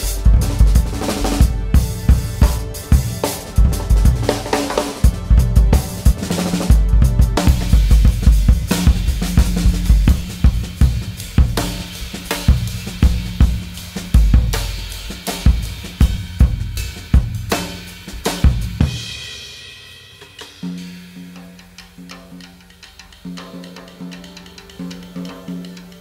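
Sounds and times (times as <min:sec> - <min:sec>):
jazz drum kit playing: 0:00.0 - 0:26.0.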